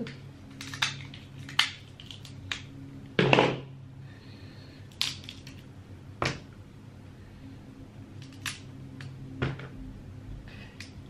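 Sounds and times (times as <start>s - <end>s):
crab shell cracking: 0.5s - 2.7s, 4.9s - 5.6s.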